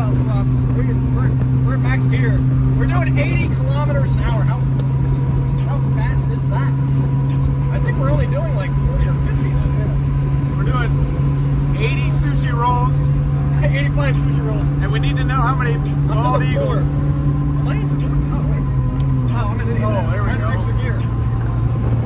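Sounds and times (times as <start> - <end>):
road and wind noise: 0.0 - 22.0
small truck engine droning: 0.0 - 22.0.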